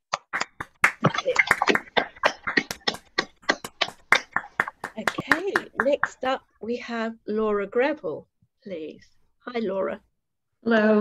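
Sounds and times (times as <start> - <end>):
people clapping over video call: 0.1 - 6.5.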